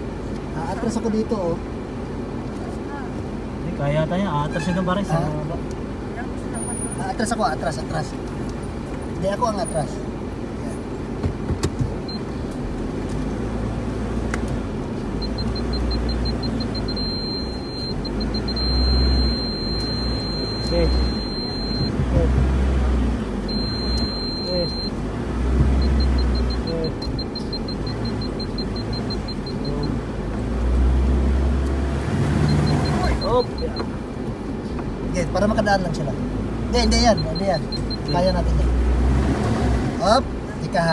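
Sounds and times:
car engine rumble: 0:00.0 - 0:40.9
parking sensor beeping: 0:12.0 - 0:12.5, 0:15.0 - 0:30.2, 0:32.3 - 0:34.1, 0:36.7 - 0:38.7.

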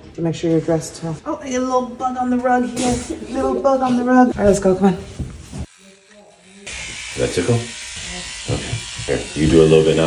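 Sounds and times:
electric toothbrush buzzing: 0:00.8 - 0:10.0.

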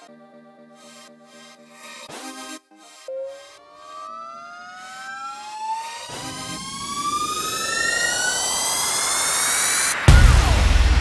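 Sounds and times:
buzzy synth tone rising: 0:00.0 - 0:11.0
hiss: 0:05.8 - 0:11.0.

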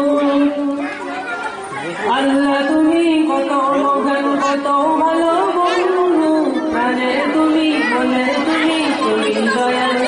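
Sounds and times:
man singing amplified: 0:00.0 - 0:10.0.

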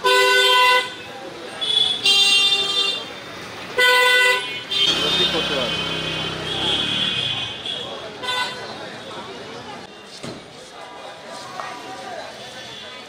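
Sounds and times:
vehicle horns honking: 0:00.0 - 0:08.8
voices: 0:04.6 - 0:13.0.

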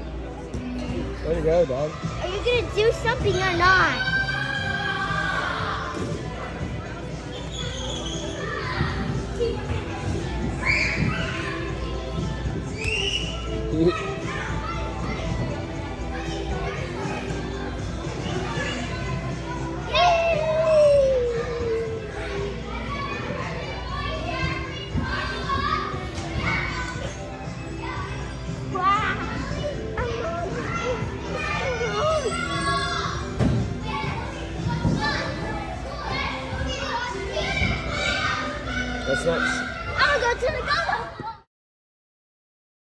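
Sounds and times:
background music: 0:00.0 - 0:41.4
children playing and calling out: 0:02.0 - 0:41.5.

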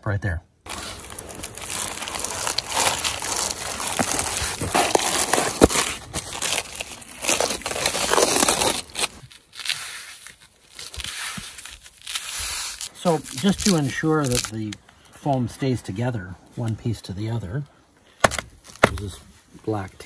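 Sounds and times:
plastic strip peeling off crinkling: 0:00.7 - 0:14.8.

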